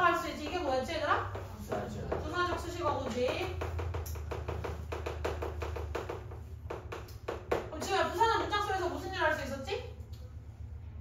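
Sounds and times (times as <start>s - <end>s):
steady low hum: 0.0s - 11.0s
chalk tapping and scraping: 0.3s - 8.7s.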